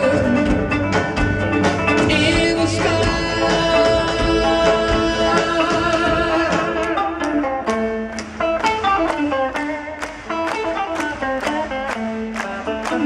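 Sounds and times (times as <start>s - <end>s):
guitar plucking quick notes: 0.0s - 13.0s.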